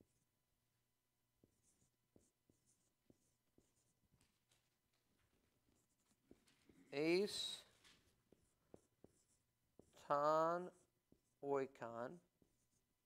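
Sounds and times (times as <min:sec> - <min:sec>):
marker pen scratching on board: 0:00.0 - 0:00.3, 0:01.4 - 0:13.0.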